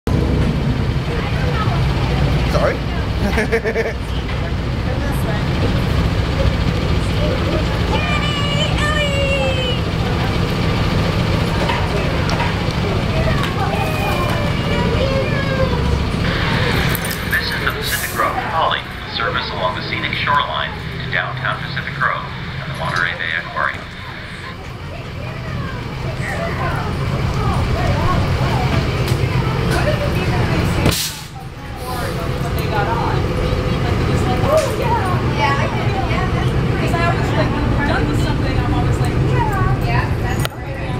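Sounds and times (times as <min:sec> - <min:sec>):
bus engine idling: 0:00.1 - 0:40.9
people talking: 0:01.0 - 0:40.9.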